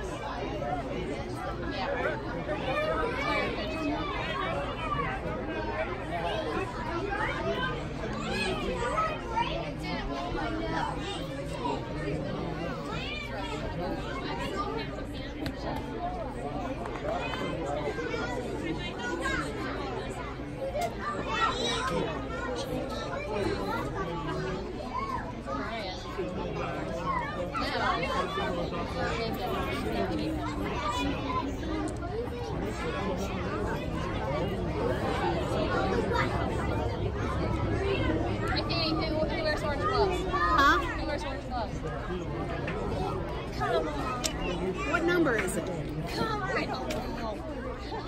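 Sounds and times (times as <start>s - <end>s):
crowd chatter: 0.0s - 48.0s.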